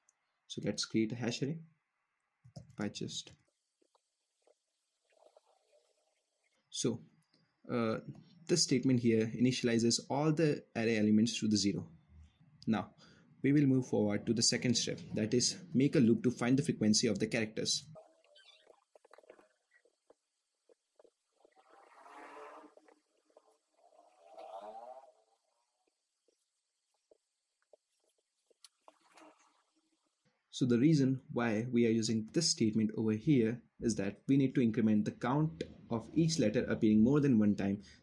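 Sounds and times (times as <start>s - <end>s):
faint soft rustle: 20.9s - 30.3s.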